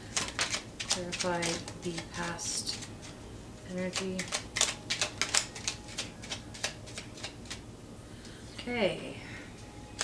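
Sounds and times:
cards being shuffled: 0.0s - 3.2s, 3.8s - 7.6s.

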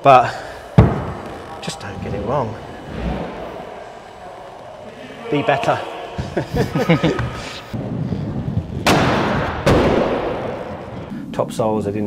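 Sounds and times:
loud echoing impacts: 0.0s - 11.2s.

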